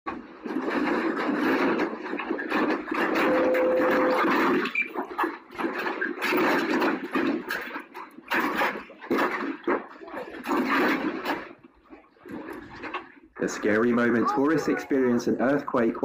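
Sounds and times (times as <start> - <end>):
room and furniture shaking rattling: 0.1 - 16.0.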